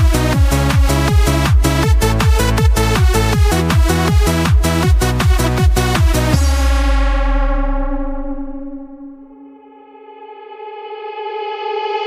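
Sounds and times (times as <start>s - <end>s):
held synthesizer chord: 0.0s - 12.0s.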